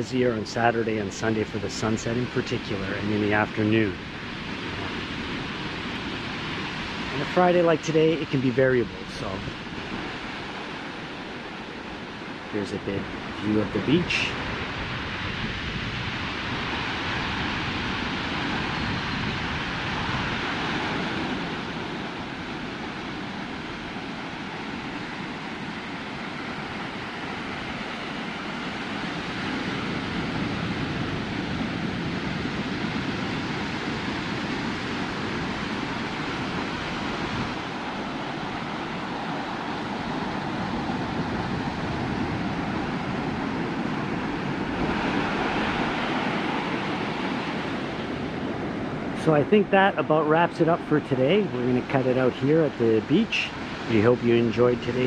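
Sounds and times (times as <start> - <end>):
surf breaking on beach: 0.0 - 55.0
wind buffeting microphone: 0.0 - 55.0.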